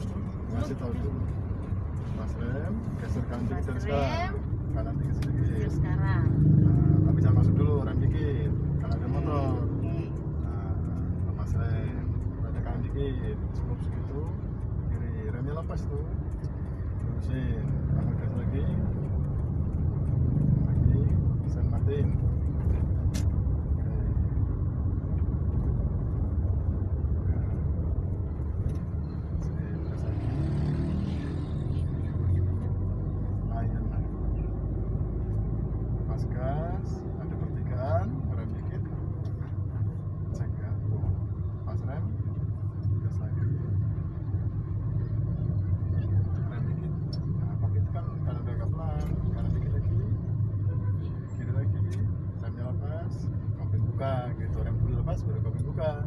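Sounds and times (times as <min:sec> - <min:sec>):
car engine and road rumble: 0:00.0 - 0:56.0.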